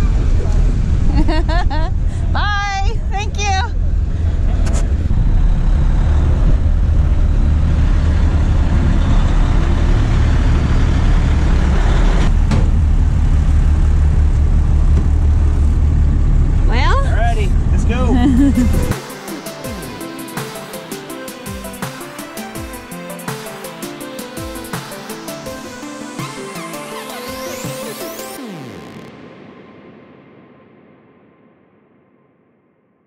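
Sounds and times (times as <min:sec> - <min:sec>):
wind noise on microphone: 0:00.0 - 0:15.6
pickup truck rumble: 0:03.8 - 0:19.0
person speaking: 0:16.9 - 0:18.9.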